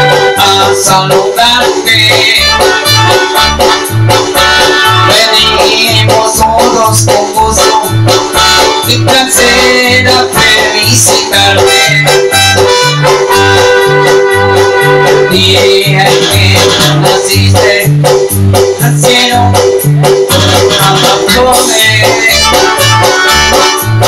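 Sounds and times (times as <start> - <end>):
electronic keyboard tune: 0.0 - 24.0.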